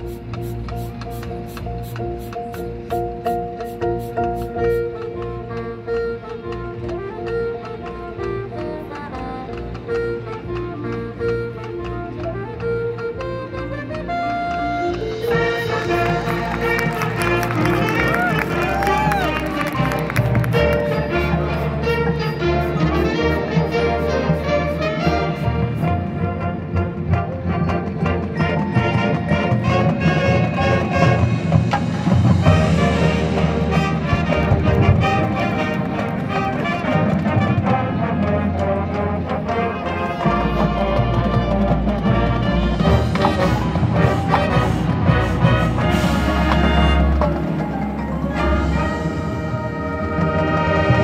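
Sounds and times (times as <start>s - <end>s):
ticking rhythm with repeated note: 0.0s - 17.7s
marching band playing: 0.0s - 51.0s.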